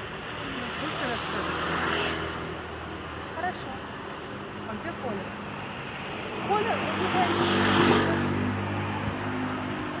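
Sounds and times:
vehicle passing: 5.2 - 10.0.

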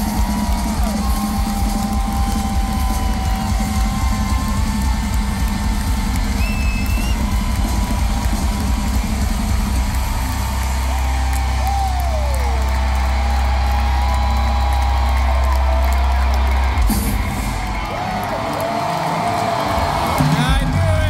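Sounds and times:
crowd cheering: 0.0 - 21.0
live rock music: 0.0 - 21.0
short whistles: 6.4 - 7.2.

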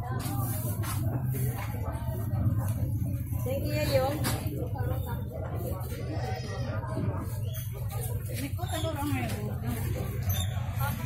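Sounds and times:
chatter of shoppers and vendors: 0.0 - 11.0.

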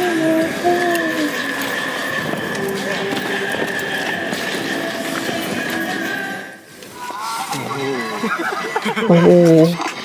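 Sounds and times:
voices talking: 0.0 - 6.4, 7.0 - 10.0.

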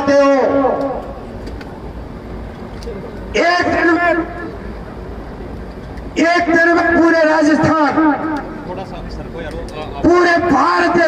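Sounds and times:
crowd and sound system hum: 0.0 - 11.0.

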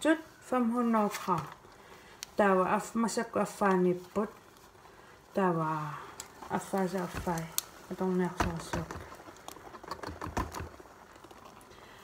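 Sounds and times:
woman speaking: 0.0 - 1.6, 2.4 - 4.4, 5.3 - 9.0.

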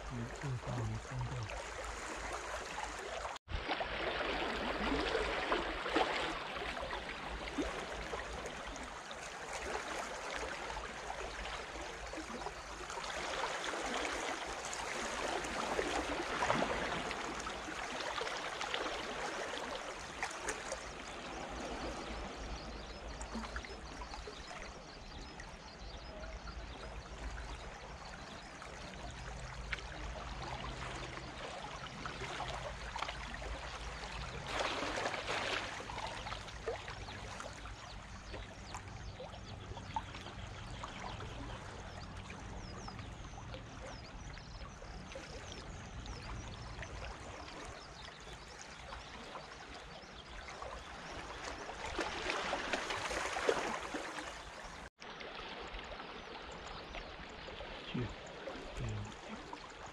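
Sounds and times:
small waves lapping on rocks: 0.1 - 39.0, 44.8 - 59.9.

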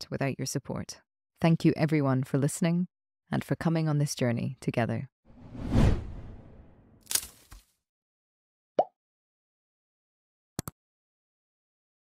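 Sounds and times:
whoosh with deep rumble: 5.4 - 6.9.

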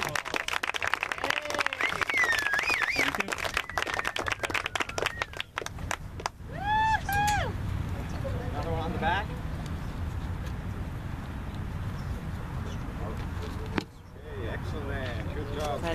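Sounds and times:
audience clapping: 0.0 - 6.4
wavering whistle: 1.7 - 5.5.

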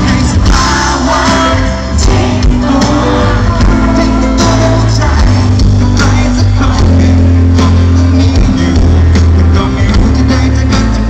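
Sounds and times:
bass guitar: 0.0 - 11.0
drums: 0.0 - 11.0
man singing: 0.0 - 11.0.

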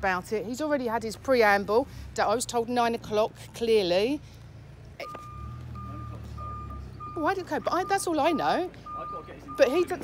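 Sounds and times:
reversing alarm beeping: 5.0 - 10.0.

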